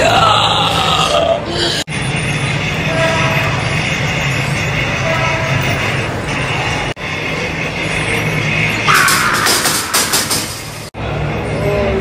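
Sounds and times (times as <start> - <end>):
hall noise: 0.0 - 12.0.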